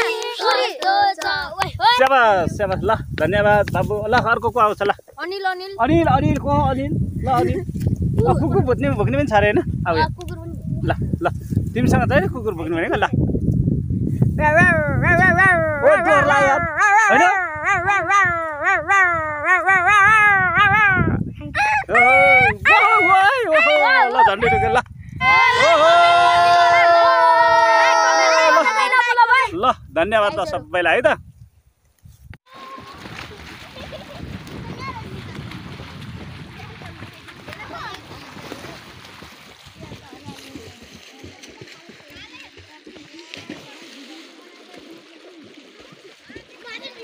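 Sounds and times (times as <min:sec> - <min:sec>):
children's voices calling: 0:00.0 - 0:02.5, 0:14.5 - 0:29.6, 0:32.5 - 0:38.9, 0:39.7 - 0:47.0
person imitating dog howling: 0:14.6 - 0:28.8
water splashing: 0:32.5 - 0:47.0.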